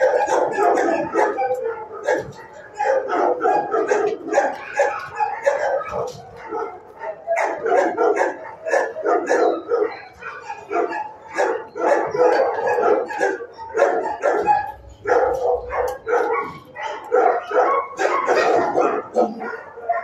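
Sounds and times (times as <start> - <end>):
dogs barking: 0.0 - 20.0.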